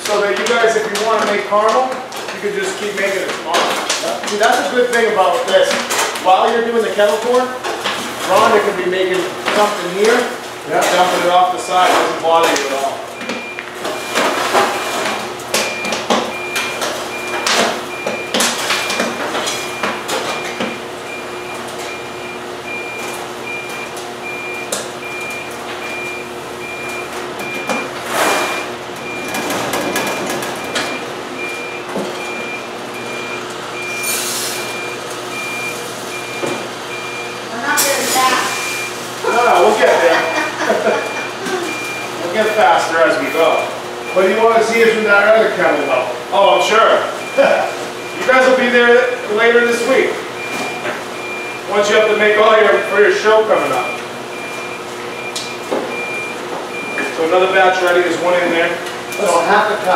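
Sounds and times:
machine humming: 0.0s - 59.9s
high repeated alarm beep: 13.2s - 39.0s, 39.6s - 46.2s, 47.0s - 57.2s, 59.1s - 59.8s.

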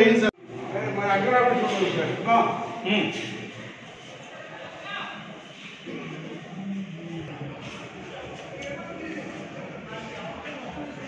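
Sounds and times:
steady hall hum: 0.0s - 11.0s.

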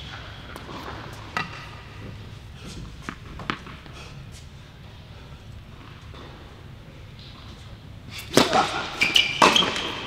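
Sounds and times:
tennis racket hitting ball: 8.2s - 10.0s.

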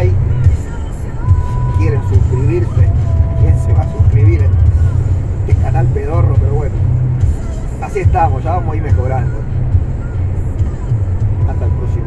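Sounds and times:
background music: 0.0s - 12.0s
road noise: 0.0s - 12.0s
truck engine droning: 0.0s - 12.0s.

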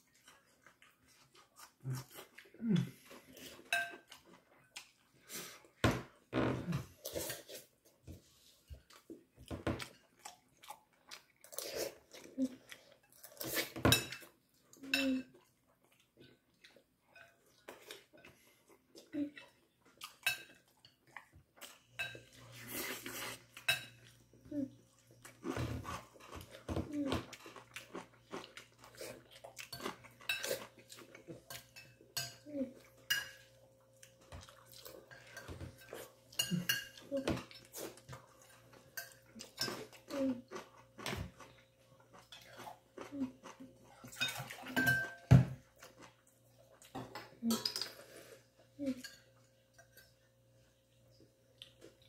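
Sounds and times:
chewing: 0.0s - 5.8s, 6.8s - 52.0s
fork clinking on plate: 44.2s - 45.4s.

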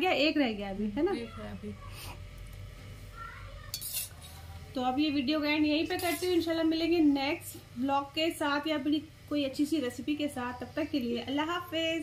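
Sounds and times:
cutlery clinking on dishes: 3.7s - 4.4s.

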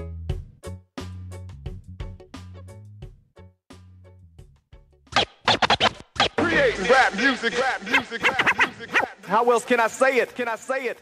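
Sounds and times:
dj scratching a record: 5.1s - 10.3s.

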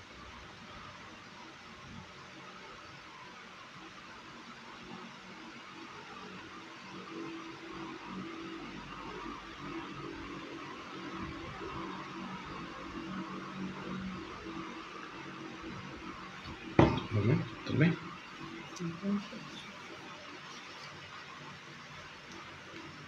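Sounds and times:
faint low hum: 0.0s - 23.0s
steady hiss: 0.0s - 23.0s
phone knocking on a table: 16.8s - 17.2s.

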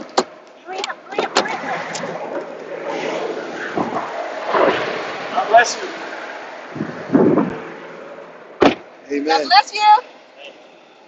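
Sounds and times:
car door thudding shut: 8.6s - 8.9s.

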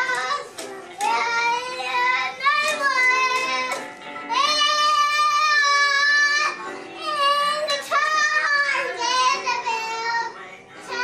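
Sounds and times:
boy singing and shouting: 0.0s - 11.0s.

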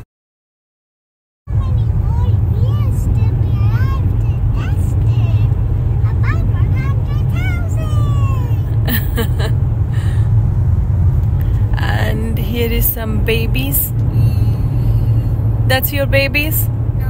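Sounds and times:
car road and engine rumble: 1.5s - 17.0s.

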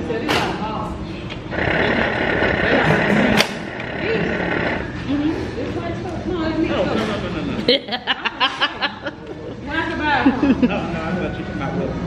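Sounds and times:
people laughing: 6.7s - 12.0s.

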